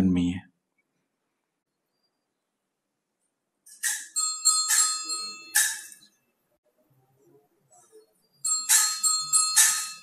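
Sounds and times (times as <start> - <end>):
altar bells ringing: 8.4 - 10.0.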